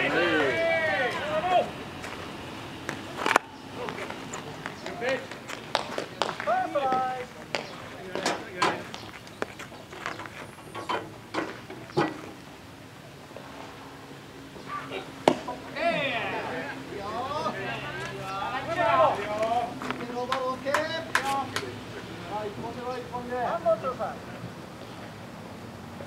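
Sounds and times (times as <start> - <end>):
players shouting and chatter: 0.0 - 25.7
sharp knocks and claps: 4.7 - 9.1, 19.9 - 21.7.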